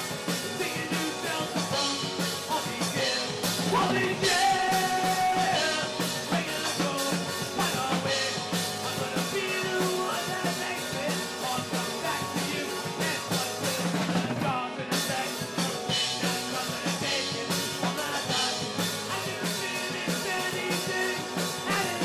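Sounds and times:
drum kit beat: 0.0 - 22.0
rock band playing: 0.0 - 22.0.

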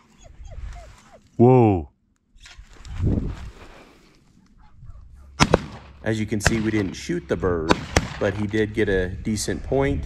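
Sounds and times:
gunshots: 5.4 - 8.6.

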